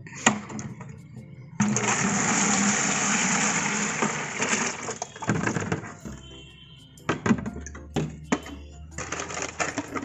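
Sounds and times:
liquid pouring into a jar: 0:01.7 - 0:05.2.

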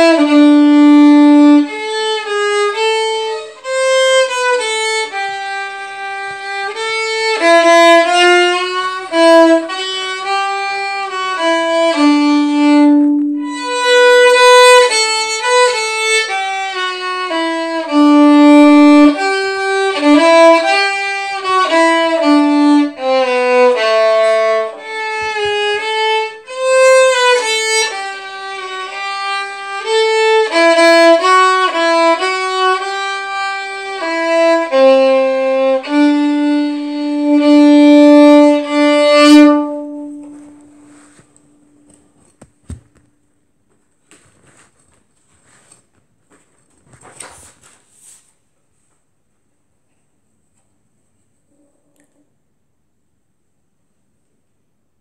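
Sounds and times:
solo violin playing a tune: 0:00.0 - 0:42.0.

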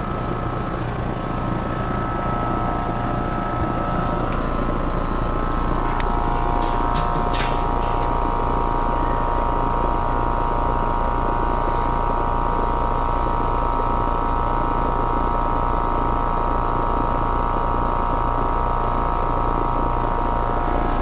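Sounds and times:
air conditioning unit humming: 0:00.0 - 0:21.0
steady high whine: 0:00.0 - 0:21.0.

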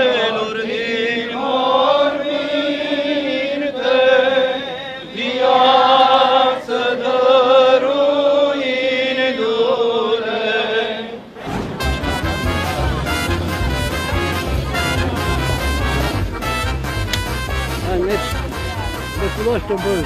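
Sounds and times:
voices chanting: 0:00.0 - 0:20.0.

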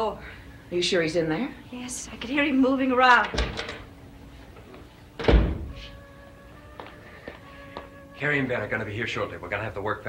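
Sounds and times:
heavy thud: 0:05.2 - 0:05.8.

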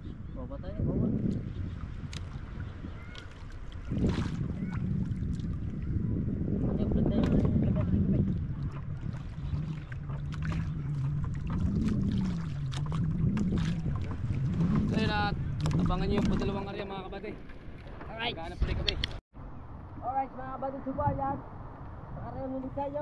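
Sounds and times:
wind buffeting the microphone: 0:00.0 - 0:19.2
water sloshing against a canoe: 0:01.0 - 0:18.8
knocks and splashes against hull: 0:07.0 - 0:19.1.

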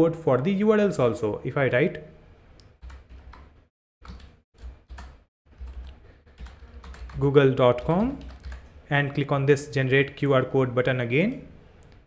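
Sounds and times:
keyboard typing: 0:02.8 - 0:08.7.

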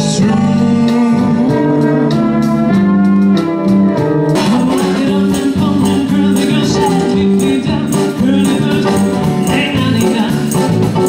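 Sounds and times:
big band playing live: 0:00.0 - 0:11.0.

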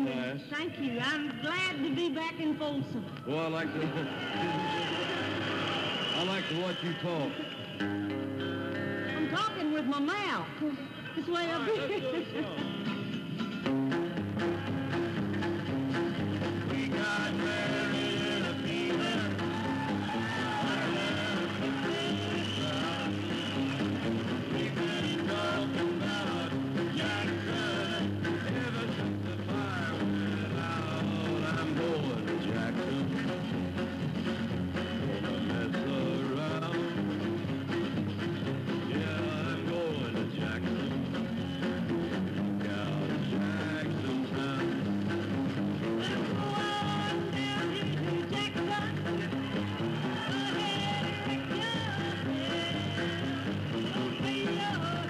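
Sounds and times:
band accompaniment: 0:00.0 - 0:55.0
acoustic guitar: 0:04.0 - 0:55.0
man and woman singing duet: 0:16.7 - 0:23.5, 0:24.5 - 0:33.2, 0:35.0 - 0:37.0, 0:46.0 - 0:49.0, 0:50.1 - 0:55.0.

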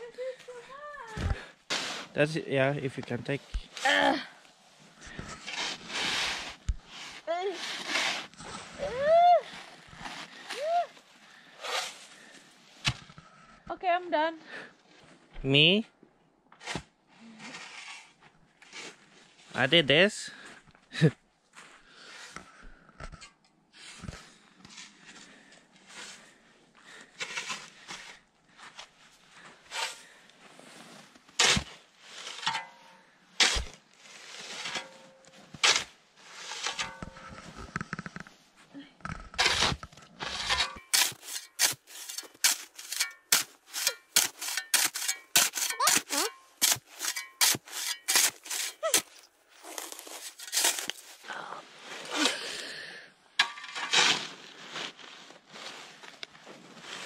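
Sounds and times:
snow shovel scraping snow: 0:00.2 - 0:02.3, 0:05.1 - 0:12.5, 0:16.6 - 0:19.2, 0:23.8 - 0:32.6, 0:33.4 - 0:38.1, 0:39.4 - 0:52.8, 0:53.7 - 0:57.0.

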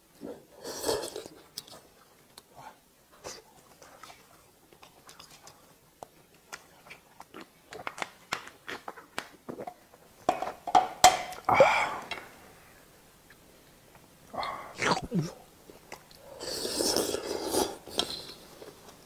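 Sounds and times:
chewing: 0:03.2 - 0:09.7
breathy sound: 0:14.3 - 0:15.4.

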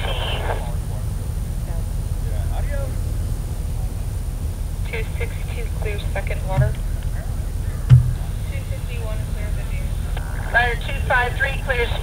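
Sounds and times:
low rumble: 0:06.4 - 0:09.5.

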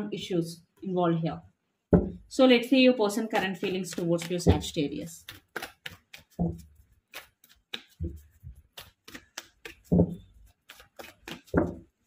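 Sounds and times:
dull thump: 0:01.9 - 0:02.2
cards being shuffled: 0:03.2 - 0:12.0.

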